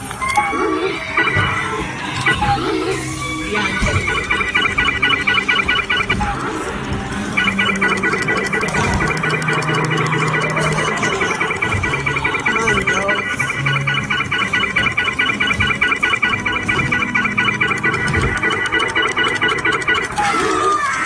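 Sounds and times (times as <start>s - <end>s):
low tones: 0.2s - 20.6s
electronic music: 0.3s - 21.0s
rapid high pulsing: 1.1s - 20.4s.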